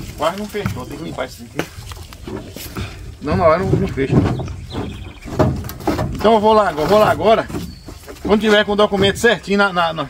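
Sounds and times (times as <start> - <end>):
thumping in livestock trailer: 2.2 - 9.7.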